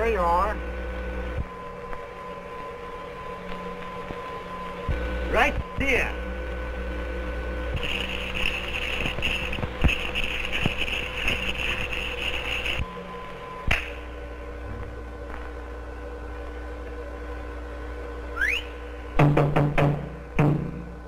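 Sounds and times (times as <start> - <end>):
film soundtrack hum and hiss: 0.0 - 21.0.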